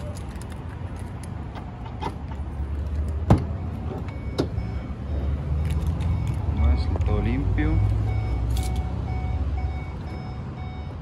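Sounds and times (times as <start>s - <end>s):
passing road traffic rumble: 0.0s - 11.0s.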